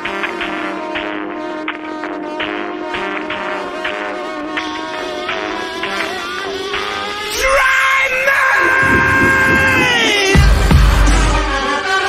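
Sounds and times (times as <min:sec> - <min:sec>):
screamed vocal note: 0:07.3 - 0:10.6
rock song: 0:07.3 - 0:11.6
drums: 0:08.6 - 0:11.7.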